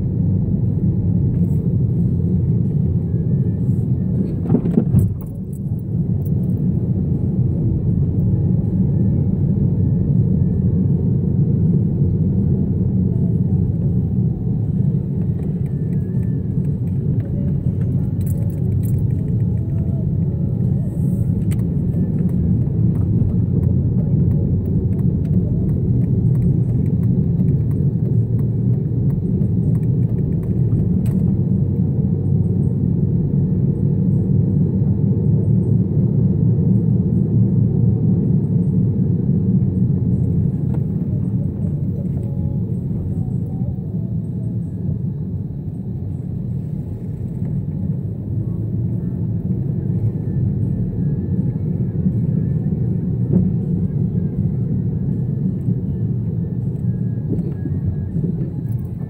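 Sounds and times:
car driving rumble inside cabin: 0:00.0 - 0:59.0.

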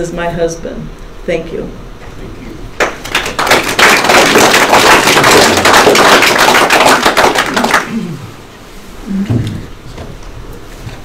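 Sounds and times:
audience applauding: 0:02.8 - 0:08.1.

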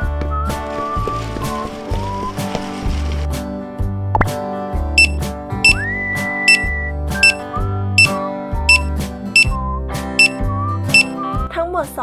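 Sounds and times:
sliding melody: 0:00.5 - 0:03.3.

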